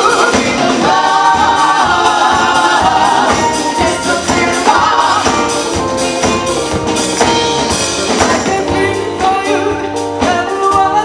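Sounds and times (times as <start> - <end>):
woman singing: 0.0 - 6.7, 8.1 - 11.0
soul band playing: 0.0 - 11.0.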